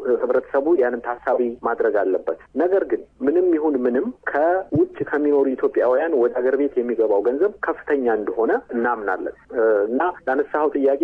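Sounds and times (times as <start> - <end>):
radio news reader talking: 0.0 - 11.0.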